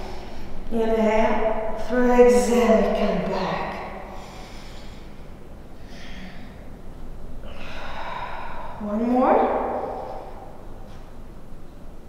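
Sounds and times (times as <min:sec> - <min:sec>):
woman breathing out: 0:07.4 - 0:08.8.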